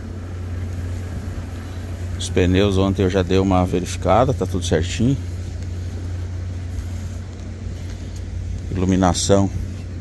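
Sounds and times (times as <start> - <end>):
diesel truck engine idling: 0.0 - 10.0
outdoor background noise: 0.0 - 10.0.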